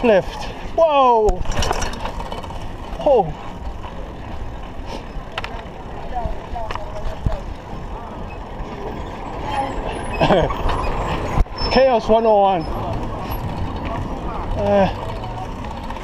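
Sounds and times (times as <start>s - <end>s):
vehicles running nearby: 0.0s - 16.0s
wind and bicycle tyres rumbling: 0.0s - 16.0s.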